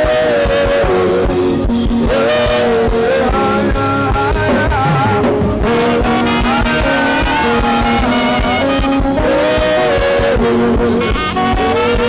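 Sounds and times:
steady drum beat: 0.0s - 12.0s
upbeat church band music: 0.0s - 12.0s.

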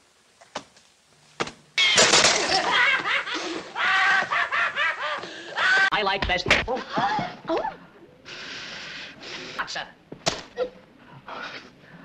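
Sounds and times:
loud laughter: 2.3s - 5.9s.

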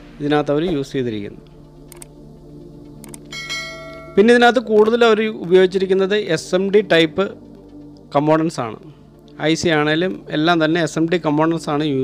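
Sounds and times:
quiet background music: 0.0s - 12.0s
man talking: 0.2s - 1.4s, 4.2s - 7.4s, 8.1s - 12.0s
electronic bell chime: 3.3s - 4.6s.

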